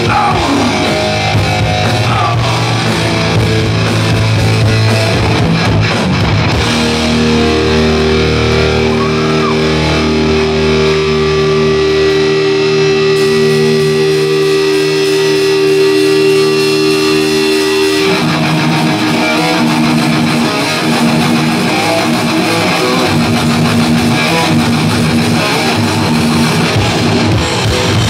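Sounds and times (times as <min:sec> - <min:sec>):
punk band playing: 0:00.0 - 0:28.0.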